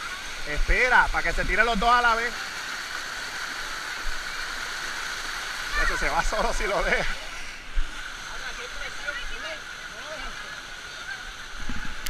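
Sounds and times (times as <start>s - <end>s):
water cascading down steps: 0.0s - 12.0s.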